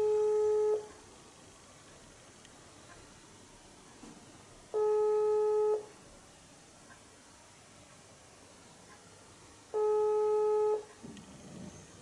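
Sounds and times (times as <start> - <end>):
telephone ringback tone: 0.0 - 0.9, 4.8 - 5.9, 9.8 - 10.9.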